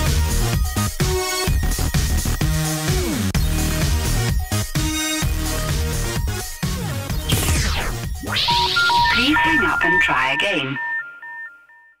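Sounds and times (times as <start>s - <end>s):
short electronic beeps: 8.2s - 11.8s
person speaking: 9.1s - 10.8s.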